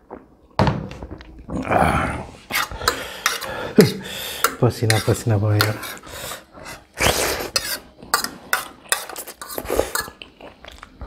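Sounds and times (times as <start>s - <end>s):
fork scraping a ceramic plate: 2.5s - 3.5s, 4.5s - 10.2s.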